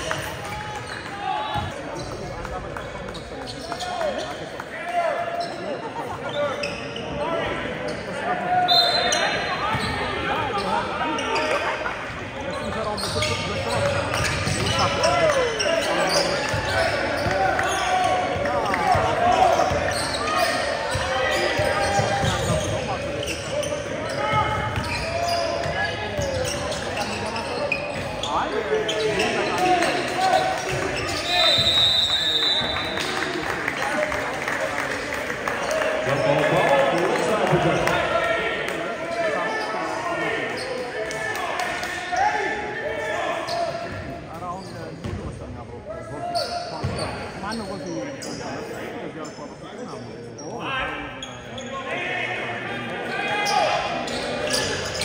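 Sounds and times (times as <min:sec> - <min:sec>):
voices of players and spectators: 0:00.0 - 0:55.0.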